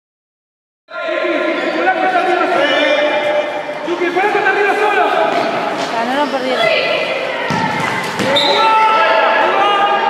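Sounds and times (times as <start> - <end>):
people shouting: 6.6 - 10.0.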